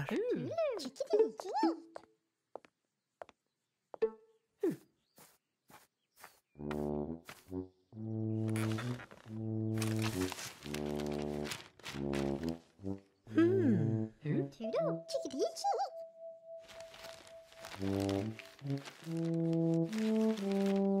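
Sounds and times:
slow brass tune: 6.6s - 14.1s, 16.0s - 21.0s
newspaper rustling: 8.4s - 12.8s, 16.6s - 21.0s.

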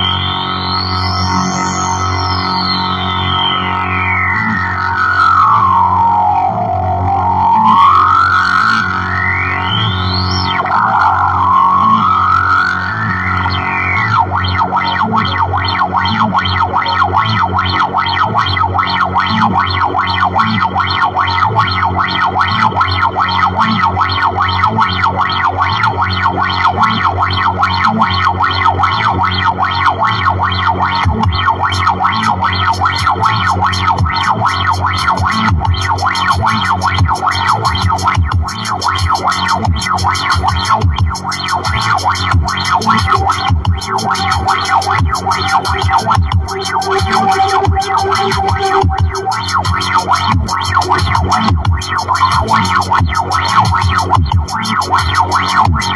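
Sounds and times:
distorted electric guitar: 0.0s - 55.9s.

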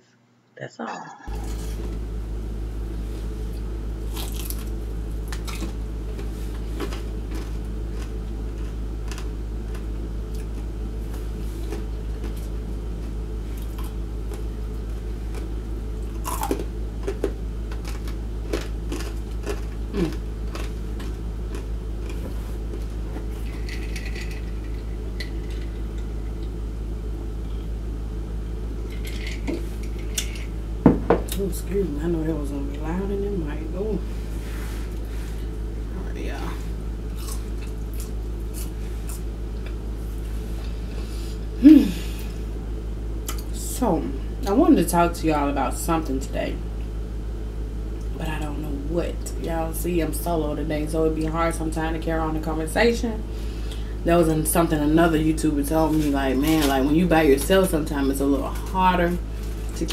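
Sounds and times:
steady low hum: 0.0s - 59.9s
chewing crunchy fried chicken: 3.5s - 26.6s, 37.0s - 40.8s.

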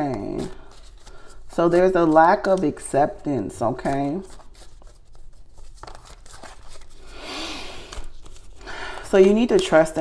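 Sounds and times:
person speaking: 0.0s - 0.7s, 1.5s - 4.4s, 9.0s - 10.0s.

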